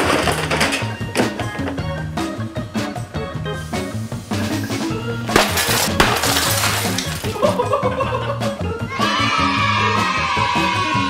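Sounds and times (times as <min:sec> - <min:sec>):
background music: 0:00.0 - 0:11.0
glass pane shattering: 0:05.2 - 0:07.7
glass shards clinking: 0:05.3 - 0:07.6.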